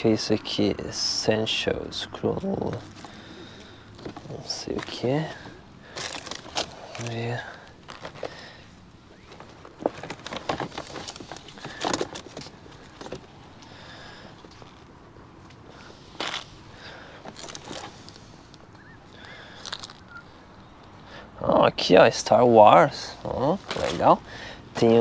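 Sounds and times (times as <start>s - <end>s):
bag rustling: 4.0s - 13.4s, 16.1s - 18.5s, 19.2s - 20.1s, 23.6s - 24.2s
plastic cases clicking and knocking: 9.2s - 13.3s.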